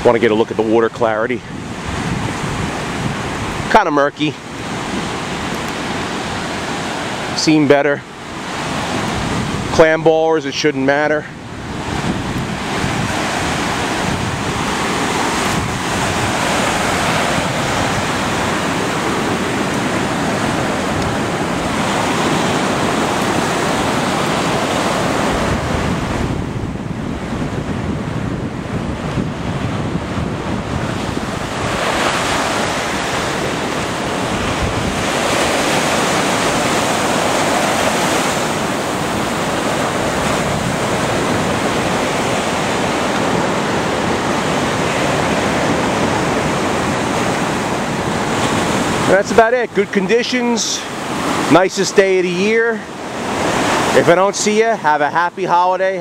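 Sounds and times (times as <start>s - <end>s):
ocean surf breaking: 0.0s - 56.0s.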